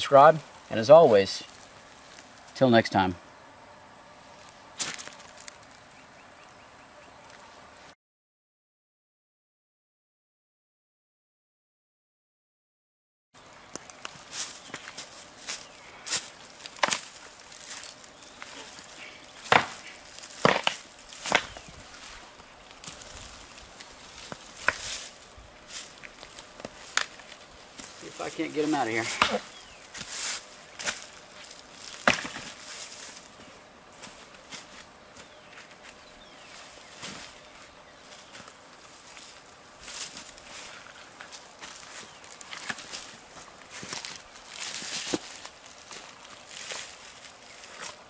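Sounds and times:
tree trunk cracking and splintering: 0:16.6 - 0:17.9, 0:19.4 - 0:21.6, 0:31.8 - 0:32.5.

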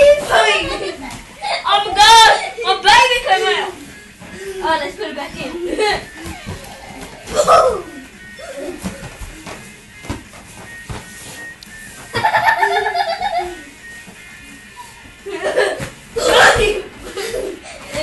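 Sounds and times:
background music: 0:00.0 - 0:17.8.

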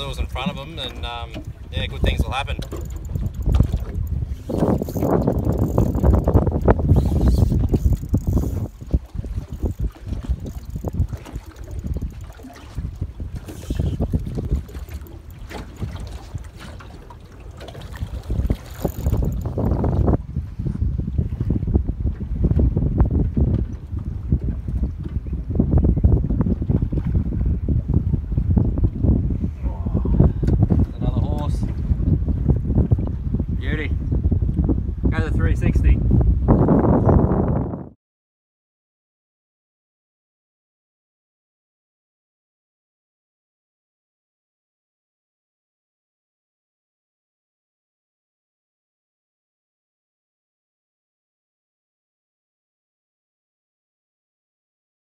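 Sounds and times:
wind rumbling on microphone: 0:00.0 - 0:38.0.

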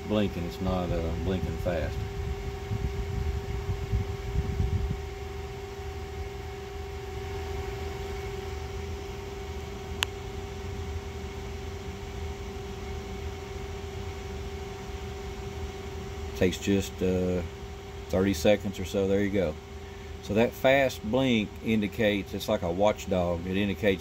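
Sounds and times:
cooling fan humming: 0:00.0 - 0:24.0.

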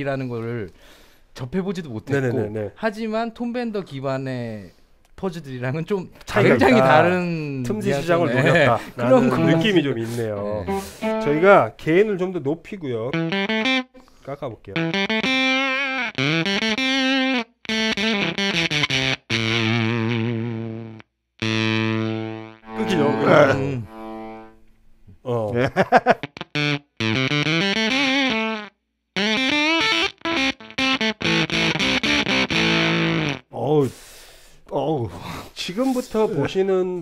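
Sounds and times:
fuzzed electric guitar: 0:07.9 - 0:11.6, 0:13.1 - 0:14.1, 0:14.7 - 0:24.6, 0:26.1 - 0:33.5.

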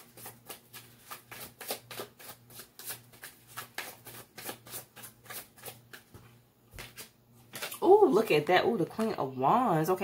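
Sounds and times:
cards being shuffled: 0:00.0 - 0:07.8.

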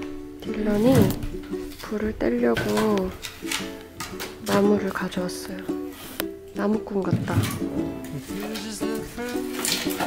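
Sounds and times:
plucked strings: 0:00.0 - 0:10.0
person singing: 0:07.2 - 0:10.0.

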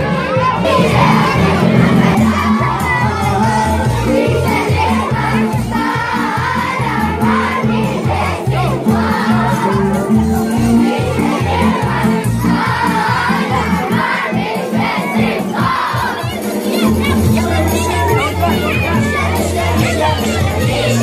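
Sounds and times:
children shouting and singing: 0:00.0 - 0:21.0.

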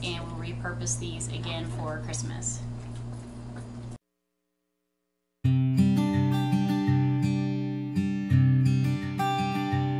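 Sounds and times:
low electrical hum: 0:00.0 - 0:04.0.

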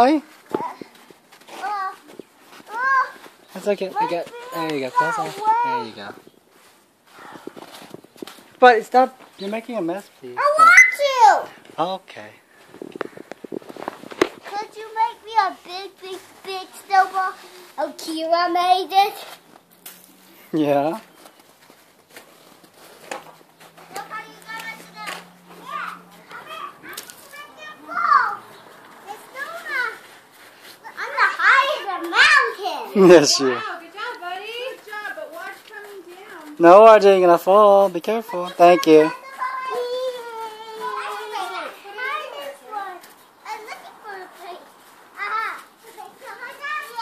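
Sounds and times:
children calling and chattering: 0:00.0 - 0:47.0.

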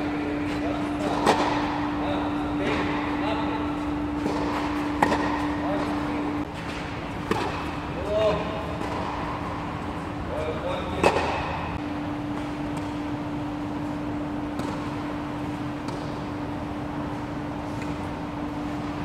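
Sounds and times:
steady low hum: 0:00.0 - 0:19.0
tennis ball struck by racket: 0:01.0 - 0:01.8, 0:04.2 - 0:06.0, 0:06.7 - 0:07.8, 0:08.8 - 0:09.6, 0:11.0 - 0:11.7, 0:14.5 - 0:14.9, 0:15.8 - 0:16.2.

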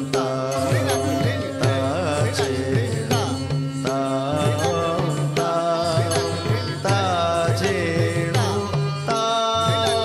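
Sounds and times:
person singing ornamented vocals: 0:00.0 - 0:10.0.

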